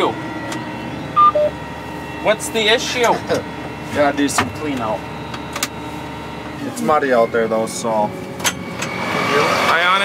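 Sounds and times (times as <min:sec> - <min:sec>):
machine humming: 0:00.0 - 0:09.8
electronic beeps: 0:01.2 - 0:01.6.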